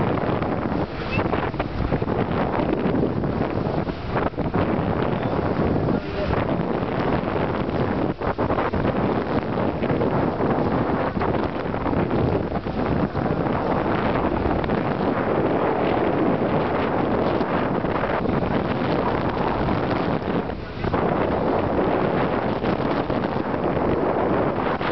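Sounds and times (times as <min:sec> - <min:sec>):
sea water rushing: 0:00.0 - 0:24.9
wind buffeting microphone: 0:00.0 - 0:24.9.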